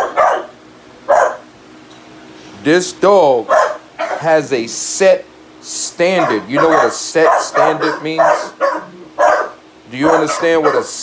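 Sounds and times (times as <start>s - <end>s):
dog barking: 0.0s - 1.5s, 3.5s - 4.3s, 6.1s - 11.0s.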